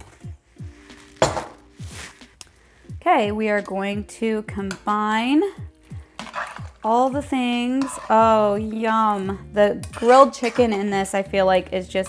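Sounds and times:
utensil clinking against a pot: 0:07.7 - 0:08.3.

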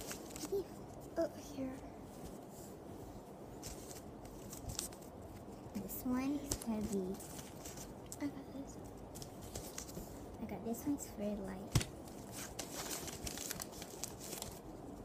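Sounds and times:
wrapping paper crinkling: 0:00.0 - 0:00.8, 0:03.6 - 0:05.6, 0:06.4 - 0:08.1, 0:11.8 - 0:15.0
soft indistinct voices: 0:08.1 - 0:09.0.

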